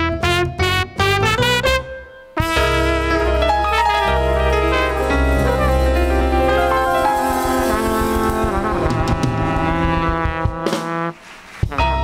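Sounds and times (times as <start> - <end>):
double bass: 0.0 - 11.1
piano: 0.0 - 12.0
trumpet playing held notes: 0.0 - 12.0
drums: 2.4 - 12.0
cymbal strokes: 3.2 - 9.7.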